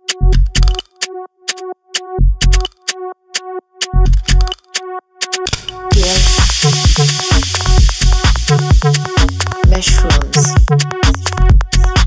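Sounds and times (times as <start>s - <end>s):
pulsing synth bass: 2.1s - 2.6s, 5.7s - 12.0s
kick drum: 2.2s - 2.6s, 5.9s - 6.6s, 8.7s - 12.0s
techno track: 3.8s - 4.6s, 5.2s - 12.0s
bright hissing noise: 5.5s - 9.7s.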